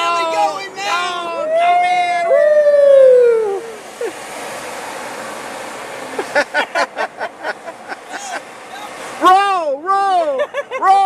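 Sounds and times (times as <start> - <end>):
traffic and road noise: 0.0 - 11.0
falling vocal whoop: 1.4 - 3.8.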